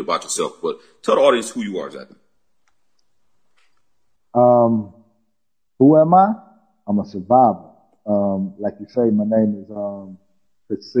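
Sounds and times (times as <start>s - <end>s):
soft clicks: 2.6s - 3.9s.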